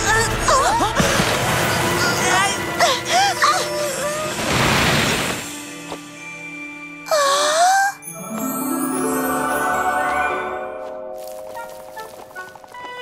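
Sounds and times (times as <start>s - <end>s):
cartoon background music: 0.0s - 13.0s
high-pitched cartoon cries: 7.1s - 8.0s
bright chimes: 8.0s - 11.2s.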